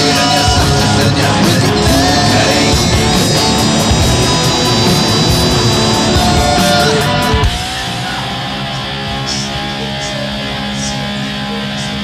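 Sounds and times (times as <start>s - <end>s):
drums playing: 0.0s - 9.2s
electric guitars: 0.0s - 12.0s
heavy metal song: 0.0s - 12.0s.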